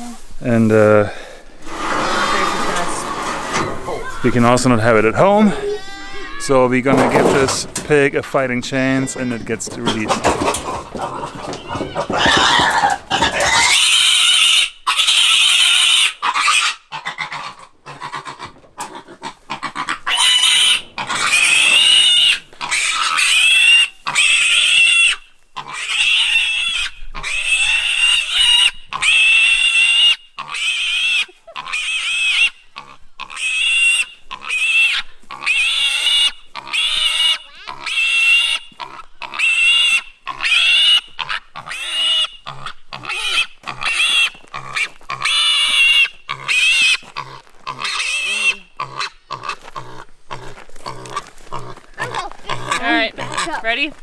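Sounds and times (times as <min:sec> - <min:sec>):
piglet squealing: 0:11.1 - 0:50.0, 0:52.0 - 0:53.7.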